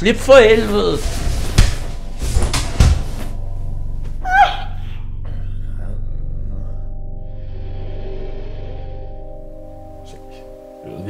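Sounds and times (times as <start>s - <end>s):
low steady hum: 0.0s - 11.0s
bodies thudding against wall: 1.2s - 3.3s.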